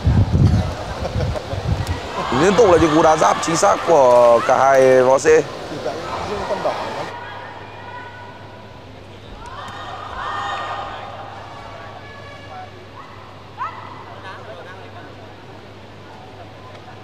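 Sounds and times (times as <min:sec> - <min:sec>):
raised voices calling out: 0:02.0 - 0:07.2.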